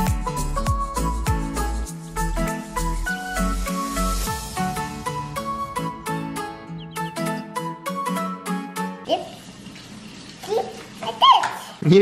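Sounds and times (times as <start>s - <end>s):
young child's voice: 9.0s - 9.4s, 10.4s - 11.8s.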